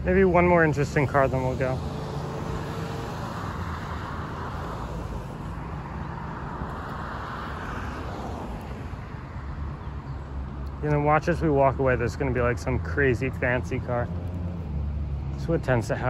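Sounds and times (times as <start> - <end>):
car passing: 0.0 - 16.0
low traffic rumble: 0.0 - 16.0.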